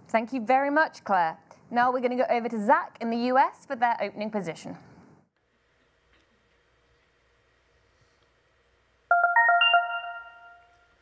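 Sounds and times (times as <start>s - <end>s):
electronic chime rising notes: 9.1s - 10.7s.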